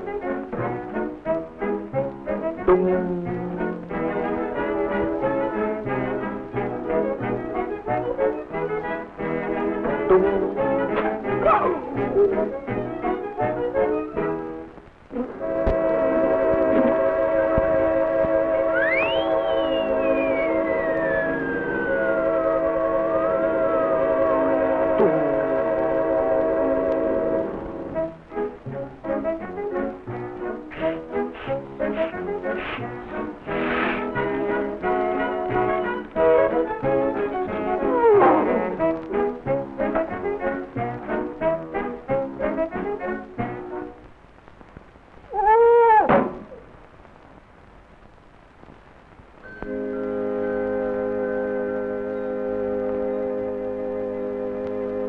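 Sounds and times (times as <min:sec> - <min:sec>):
cartoon score music: 0:00.0 - 0:44.0
falling pitch glide: 0:02.7 - 0:04.4, 0:18.5 - 0:25.8.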